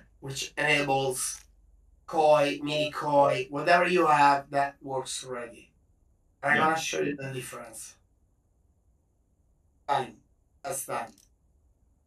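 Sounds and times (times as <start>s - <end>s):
man speaking: 0.6s - 1.2s, 6.4s - 7.2s.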